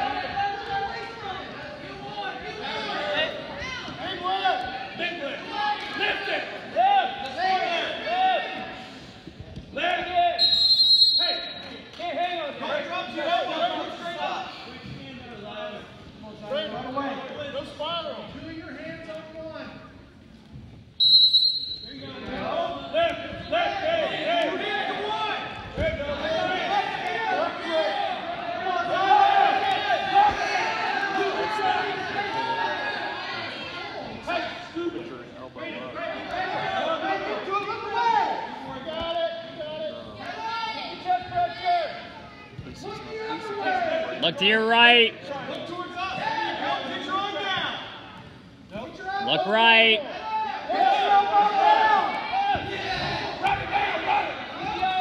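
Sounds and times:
crowd chatter and shouting: 0:00.0 - 0:55.0
referee's whistle blasts: 0:10.4 - 0:11.8, 0:21.0 - 0:22.1.

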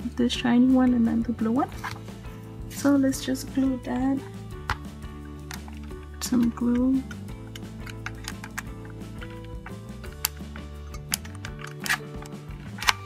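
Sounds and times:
soft background music: 0:00.0 - 0:13.0.

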